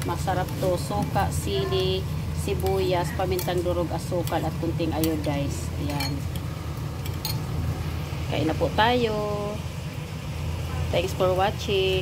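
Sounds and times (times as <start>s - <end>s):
woman's voice: 0.0s - 6.3s, 8.3s - 9.7s, 10.7s - 12.0s
steady low hum: 0.0s - 12.0s.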